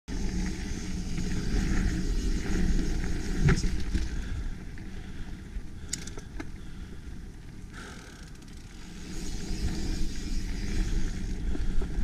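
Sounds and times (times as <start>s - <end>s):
bike tyres rolling on dirt: 0.1s - 12.0s.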